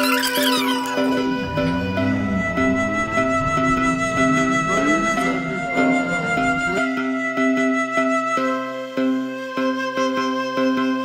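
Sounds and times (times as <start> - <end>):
background music with gliding notes: 0.0 - 11.0.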